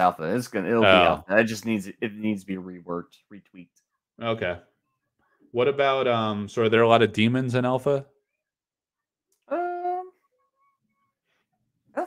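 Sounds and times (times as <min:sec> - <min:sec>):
man speaking: 0:00.0 - 0:04.7, 0:05.5 - 0:08.1.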